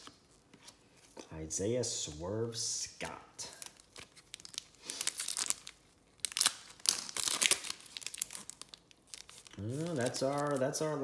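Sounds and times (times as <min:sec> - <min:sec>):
foil wrapper tearing and crinkling: 0:03.6 - 0:10.9.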